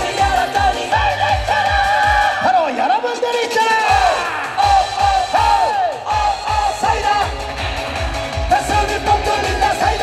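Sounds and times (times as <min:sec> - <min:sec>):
man singing into microphone: 0:00.0 - 0:02.9, 0:04.1 - 0:07.3, 0:08.5 - 0:10.0
live pop-rock band: 0:00.0 - 0:10.0.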